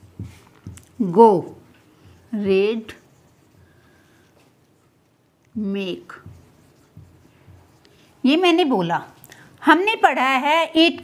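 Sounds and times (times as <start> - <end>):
marker writing on whiteboard: 0.0 - 9.2.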